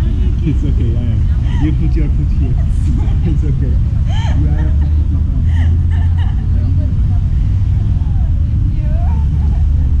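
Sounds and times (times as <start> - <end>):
faint voices: 0.0 - 10.0
wind buffeting microphone: 0.0 - 10.0
laughter: 1.5 - 6.7.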